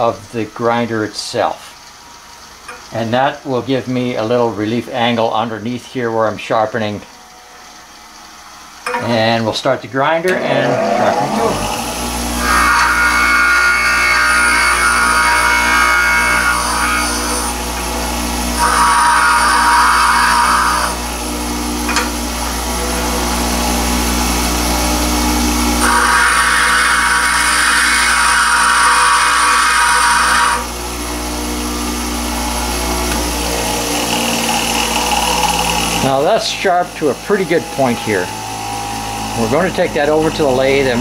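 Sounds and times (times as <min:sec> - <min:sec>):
tool bit grinding on wheel: 0:10.3 - 0:21.2, 0:25.7 - 0:30.8, 0:32.6 - 0:41.0
bench grinder motor hum: 0:10.3 - 0:41.0.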